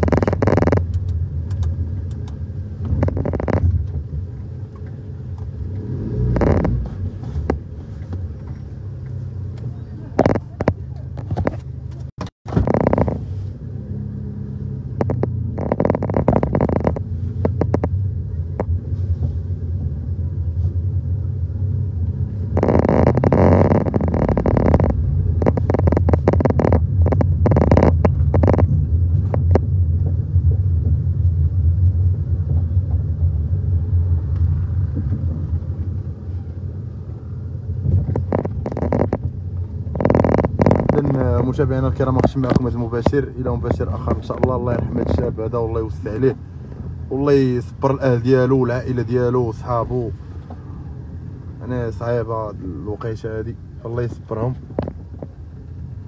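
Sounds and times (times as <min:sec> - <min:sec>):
microphone wind and handling rustle: 0:00.0 - 0:13.8, 0:14.8 - 0:56.0
steady low rumble: 0:00.0 - 0:56.0.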